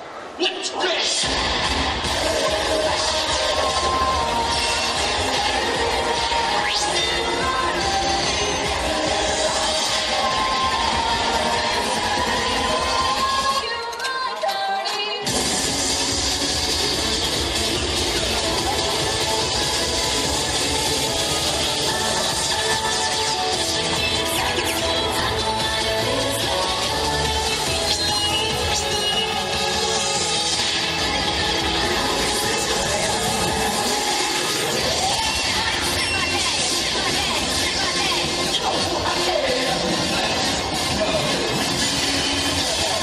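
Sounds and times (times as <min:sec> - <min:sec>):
dance music: 0:00.4 - 0:43.0.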